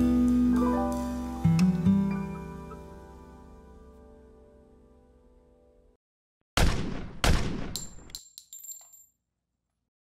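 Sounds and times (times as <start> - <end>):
gunshots with echo: 6.6 - 8.1
light metallic clinks: 7.8 - 9.2.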